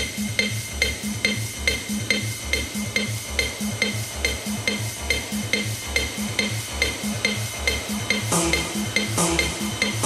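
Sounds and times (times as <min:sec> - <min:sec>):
high ticking percussion: 0:00.0 - 0:10.0
techno kick drum: 0:00.0 - 0:10.0.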